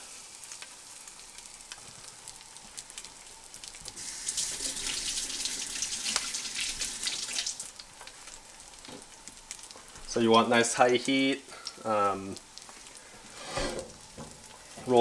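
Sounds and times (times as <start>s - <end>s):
fish frying in oil: 0.0s - 15.0s.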